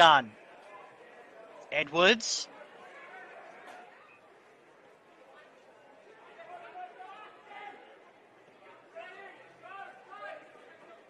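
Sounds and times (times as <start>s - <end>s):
faint indistinct speech: 0.0s - 11.0s.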